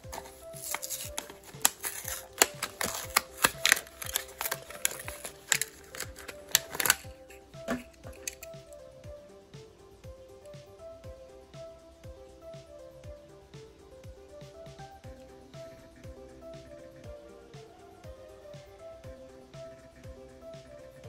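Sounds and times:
plastic blister pack crackling: 0.0 - 8.6
soft background music: 0.0 - 21.0.

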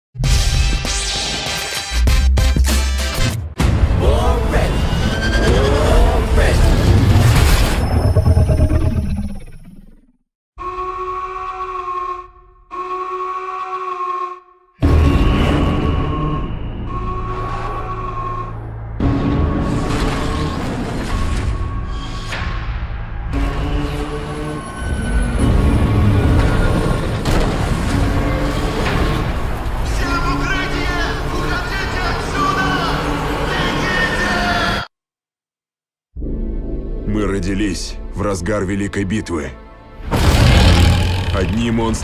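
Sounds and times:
horn-like chord blasts: 10.6 - 18.7
loud booming hit: 40.1 - 41.6.

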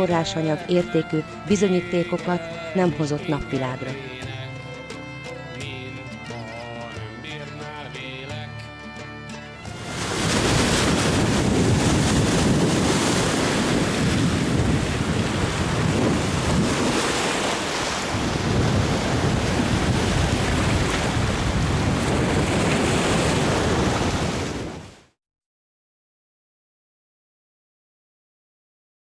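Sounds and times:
ocean surf and breaking waves: 0.0 - 8.3, 9.2 - 25.2
country-style tune: 0.0 - 23.8.

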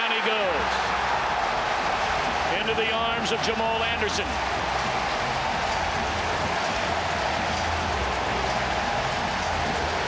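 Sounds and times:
stadium crowd cheering: 0.0 - 10.0.

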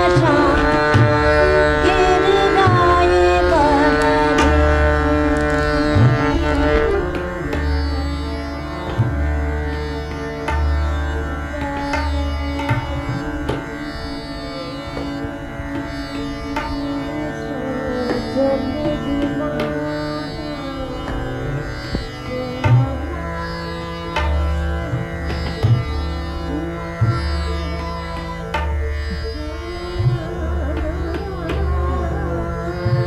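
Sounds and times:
harmonium reed tones: 0.0 - 15.3, 16.1 - 23.9
tabla strokes: 0.0 - 33.0.

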